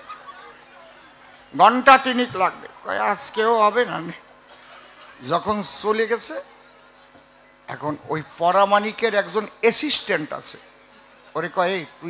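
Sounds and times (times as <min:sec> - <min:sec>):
man speaking into a microphone: 0:01.5 - 0:04.2, 0:05.2 - 0:06.5, 0:07.7 - 0:10.6, 0:11.4 - 0:12.0.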